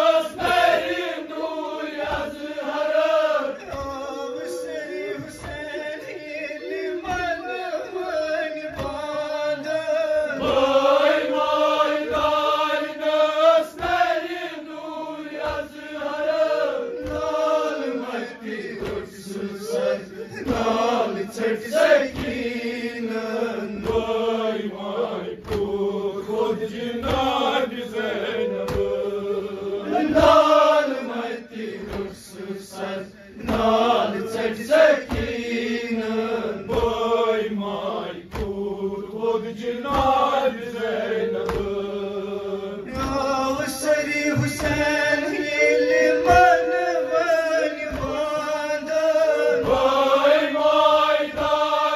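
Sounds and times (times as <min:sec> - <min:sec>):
men chanting a lament: 0:00.0 - 0:51.9
chest-beating slaps: 0:00.2 - 0:42.2, 0:42.9 - 0:51.9.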